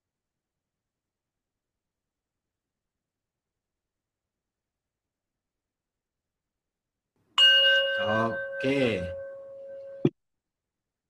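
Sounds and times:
bell chime ringing: 7.4s - 10.1s.

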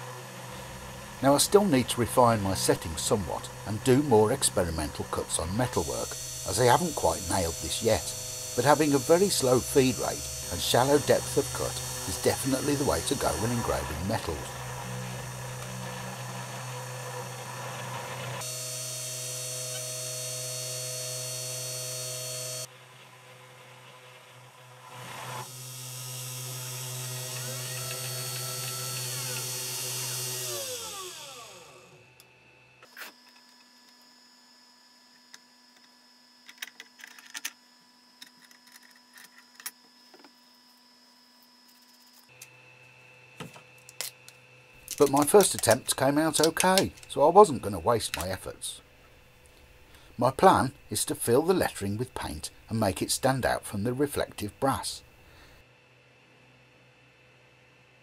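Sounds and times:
spindle motor humming: 0.0s - 22.7s, 23.5s - 37.2s, 37.8s - 55.6s
motor spinning down whine: 0.0s - 22.8s, 24.8s - 36.6s
engraving bit hissing on brass: 5.7s - 14.6s.

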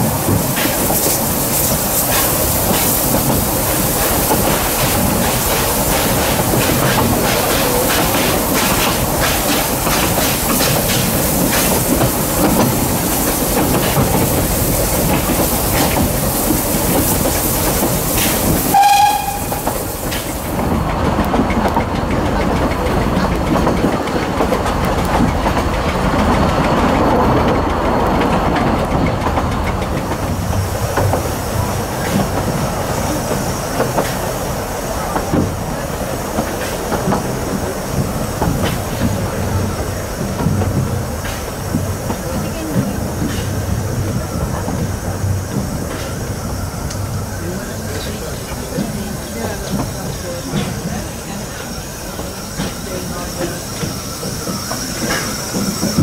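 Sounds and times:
train running rumble: 0.0s - 56.0s
steam whistle toot: 18.7s - 19.7s.

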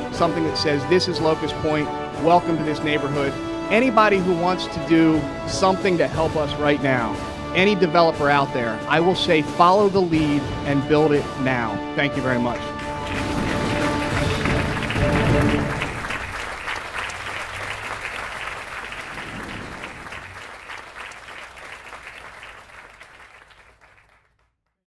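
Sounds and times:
background music: 0.0s - 18.3s
crowd applauding: 12.2s - 24.5s.

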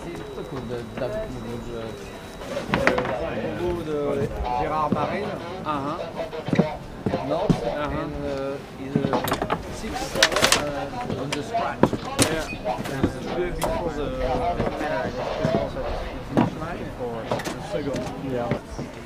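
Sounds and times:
people talking indistinctly: 0.0s - 19.0s
knocks and clatters: 9.0s - 13.7s.

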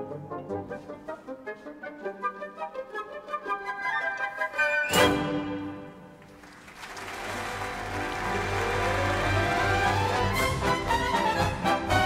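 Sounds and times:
symphony orchestra playing: 0.0s - 6.4s, 7.0s - 12.0s.

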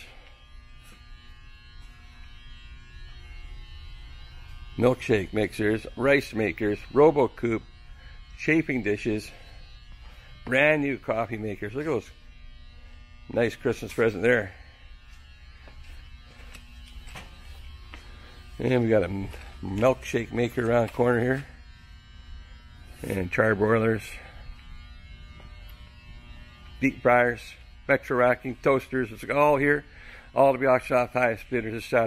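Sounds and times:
electrical hum with buzz: 0.0s - 32.0s.

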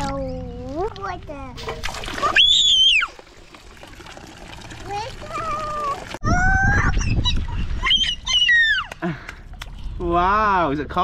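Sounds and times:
water running into stone basin: 1.6s - 7.9s
toddler squealing: 6.3s - 8.9s.

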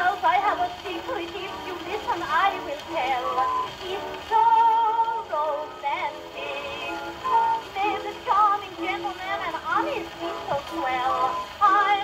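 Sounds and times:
woman singing on gramophone record: 0.0s - 12.0s.

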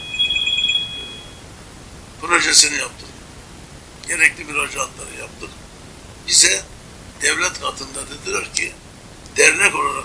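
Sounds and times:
warbling high electronic tone: 0.0s - 1.4s.

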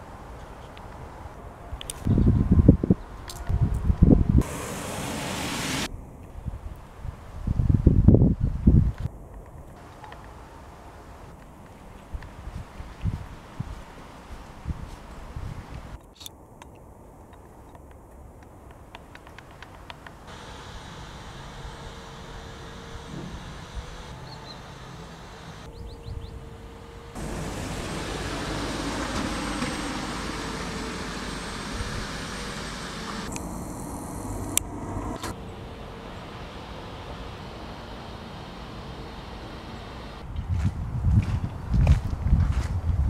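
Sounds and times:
cars passing: 4.4s - 5.9s, 20.3s - 40.2s.

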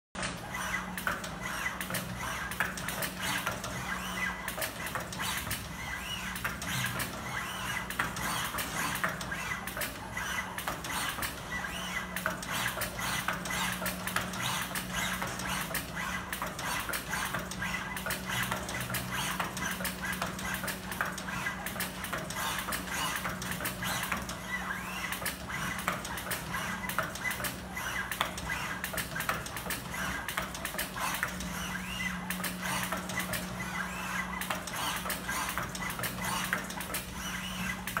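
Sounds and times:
robot mechanism clicking and clattering: 0.2s - 38.0s.

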